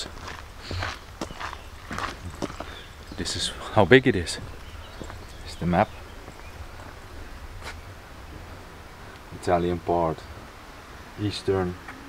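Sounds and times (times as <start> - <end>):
footsteps of person walking: 0.0 - 8.7.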